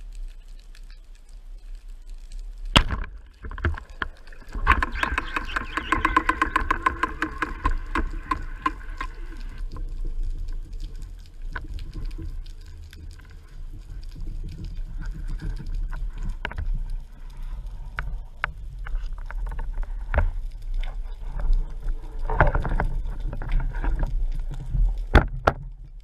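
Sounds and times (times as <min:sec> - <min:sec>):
low underwater rumble: 0:00.0 - 0:26.0
speargun firing underwater: 0:02.8 - 0:03.2
reel line clicking and whining: 0:03.5 - 0:17.3.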